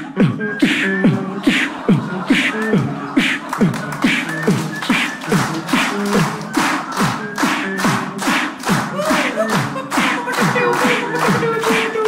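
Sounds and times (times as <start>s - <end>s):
beatboxing kick thumps: 0.0s - 12.0s
beatboxing snare hisses: 0.6s - 9.4s.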